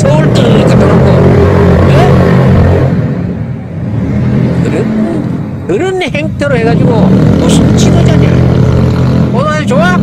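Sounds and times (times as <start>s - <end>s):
motorcycle engine: 0.0s - 10.0s.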